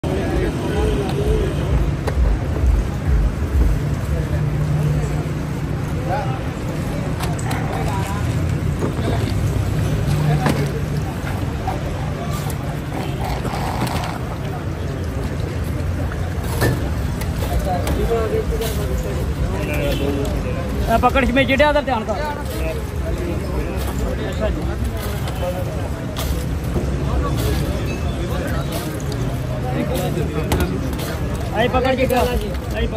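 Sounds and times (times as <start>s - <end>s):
people's voices: 0.0s - 32.9s.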